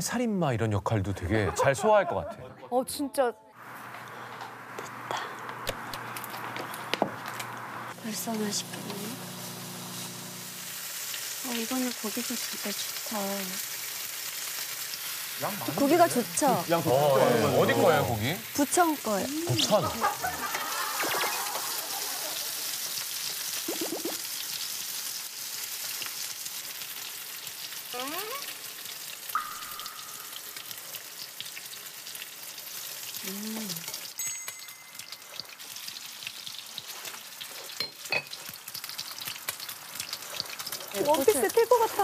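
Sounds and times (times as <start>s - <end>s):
oil crackling and popping: 3.6s - 42.0s
pork sizzling in a frying pan: 5.5s - 42.0s.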